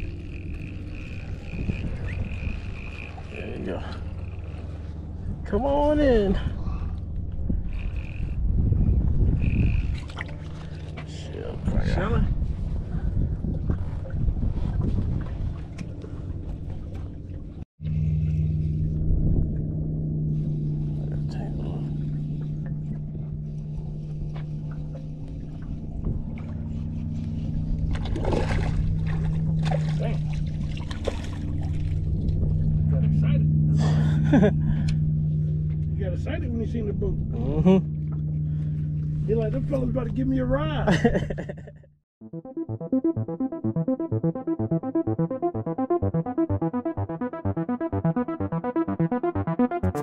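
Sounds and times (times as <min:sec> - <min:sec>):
boat motor humming: 0:00.0 - 0:50.0
low handling noise: 0:09.7 - 0:33.8.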